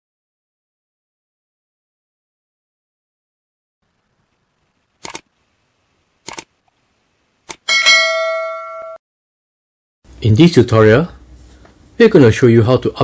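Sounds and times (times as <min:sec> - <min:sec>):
short clicks: 0:05.0 - 0:05.3, 0:06.2 - 0:06.5, 0:07.4 - 0:07.7
bell-like ding: 0:07.7 - 0:09.0.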